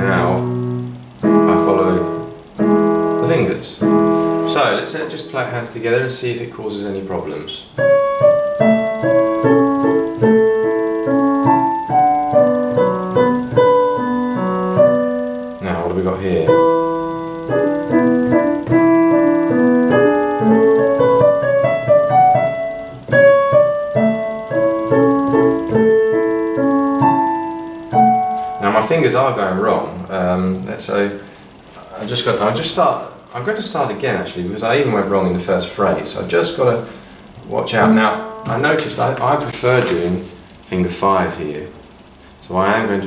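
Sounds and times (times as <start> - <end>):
digital piano played slowly: 0.0 - 30.7, 34.7 - 40.2.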